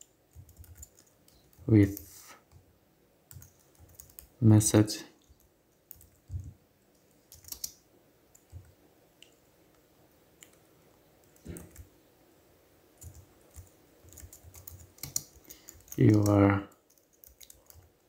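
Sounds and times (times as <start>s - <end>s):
computer keyboard typing: 0.0s - 2.6s, 3.3s - 4.4s, 5.2s - 8.8s, 11.2s - 11.9s, 13.0s - 18.0s.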